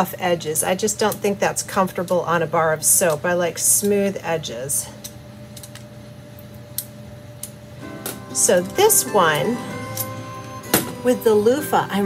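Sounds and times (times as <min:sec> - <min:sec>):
soft background music: 0:07.8 - 0:12.0.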